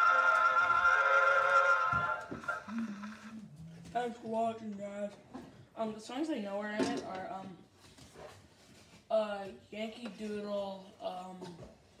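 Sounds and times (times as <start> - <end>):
person humming low: 2.3 - 3.6.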